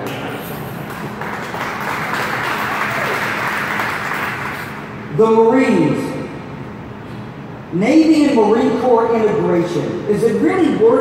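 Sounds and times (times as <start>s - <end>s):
audience applauding: 0.0s - 4.8s.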